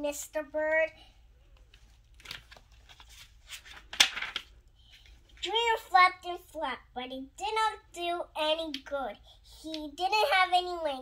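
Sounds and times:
page turning: 0:01.6 - 0:05.4
paper rustling: 0:01.6 - 0:05.4.

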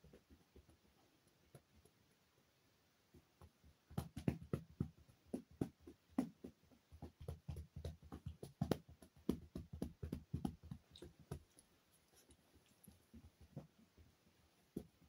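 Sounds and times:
fingers rubbing through fur: 0:10.5 - 0:13.8.

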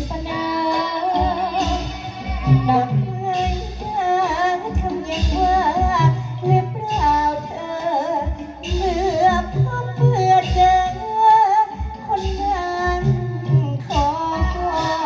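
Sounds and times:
backing music with low beat: 0:00.0 - 0:15.0
high voice singing: 0:00.0 - 0:15.0.

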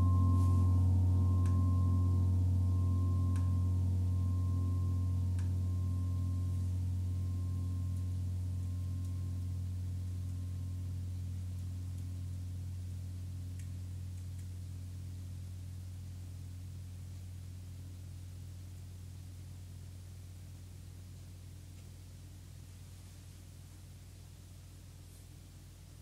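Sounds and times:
large gongs humming: 0:00.0 - 0:13.3.

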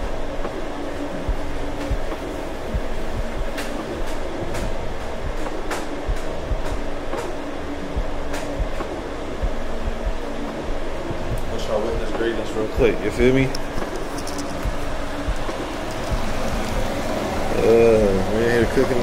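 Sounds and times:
steady rumbling noise: 0:00.0 - 0:19.0.

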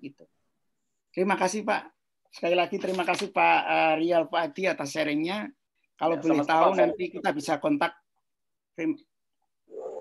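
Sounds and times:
voice over video call: 0:00.0 - 0:10.0.

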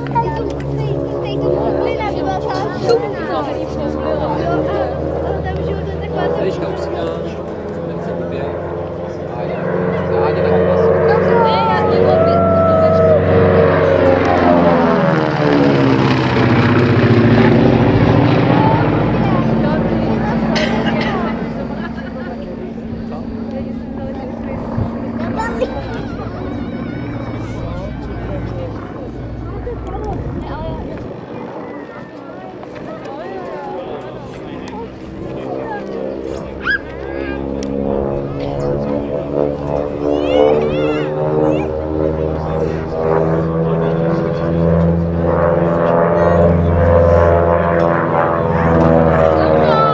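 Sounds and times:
people talking: 0:00.0 - 0:49.9
propeller aircraft passing overhead: 0:00.0 - 0:49.9.

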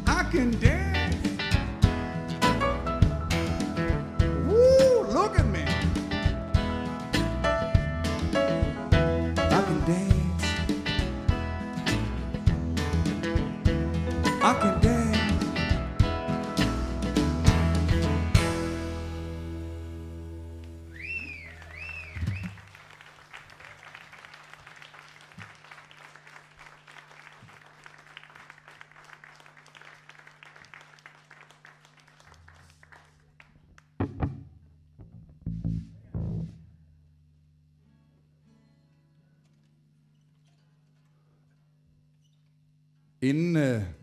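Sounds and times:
audience applause: 0:20.9 - 0:33.6.

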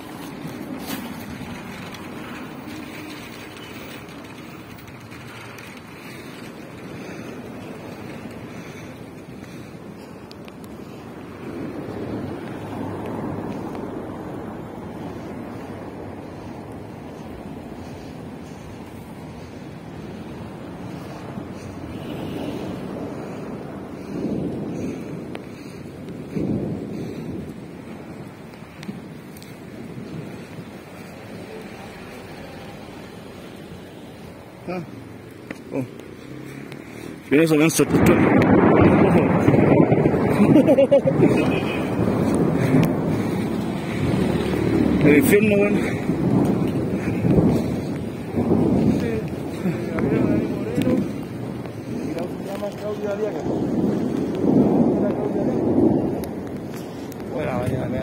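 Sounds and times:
low rumble of thunder: 0:00.0 - 0:58.0
rain: 0:00.0 - 0:58.0
wind: 0:00.0 - 0:58.0.

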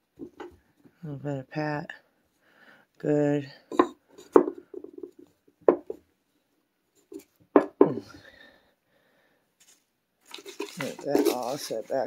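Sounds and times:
knocks on wooden tabletop: 0:03.7 - 0:06.0, 0:07.5 - 0:08.0.

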